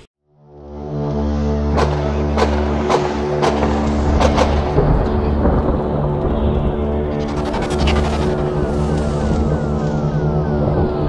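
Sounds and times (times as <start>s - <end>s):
background music with sustained tones: 0.2s - 11.0s
deep rumble of explosions: 1.8s - 11.0s.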